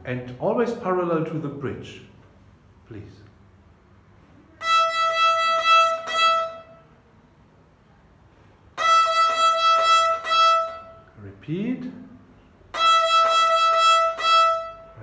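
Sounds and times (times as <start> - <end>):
violin string bowed: 4.6 - 6.9, 8.8 - 11.1, 12.7 - 15.0.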